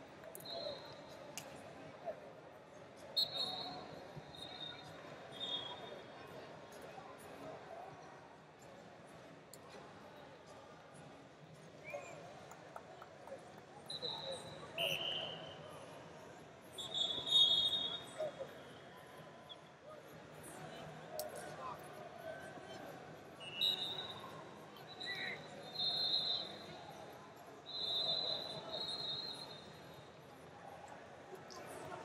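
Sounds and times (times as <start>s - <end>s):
arena crowd chatter: 0.0s - 32.0s.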